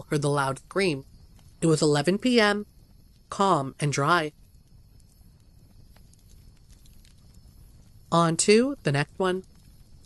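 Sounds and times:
low steady rumble: 0:00.0 - 0:10.0
faint ticks: 0:01.0 - 0:01.7, 0:02.6 - 0:10.0.

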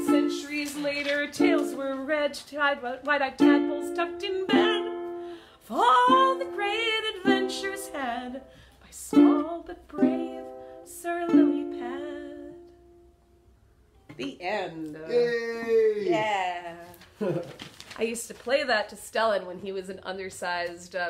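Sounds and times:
ukulele strumming chords: 0:00.0 - 0:02.2, 0:03.3 - 0:13.2.

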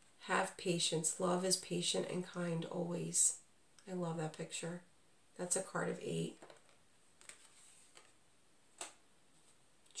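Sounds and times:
cards clicking and rustling: 0:06.4 - 0:08.2.

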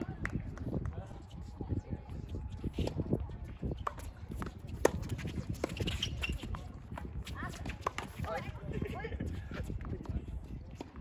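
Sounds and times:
players' footsteps on court: 0:00.0 - 0:11.0.

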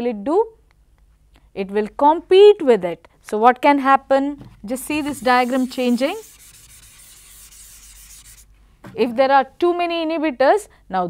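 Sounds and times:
duster wiping chalkboard: 0:04.7 - 0:08.5.

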